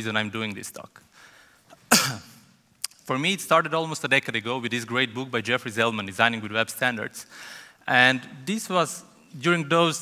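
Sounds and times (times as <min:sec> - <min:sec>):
man coughing: 0:01.8 - 0:02.5.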